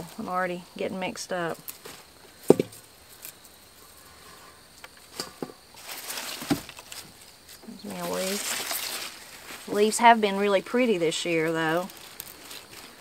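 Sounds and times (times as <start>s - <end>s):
rustling of leafy greens: 0.0s - 13.0s
soft thump: 2.5s - 2.8s.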